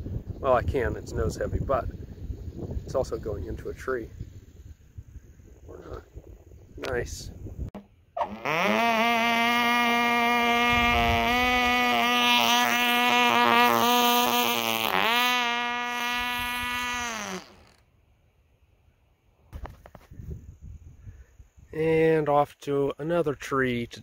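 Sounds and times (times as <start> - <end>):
model aircraft engine buzzing: 8.2 - 17.9.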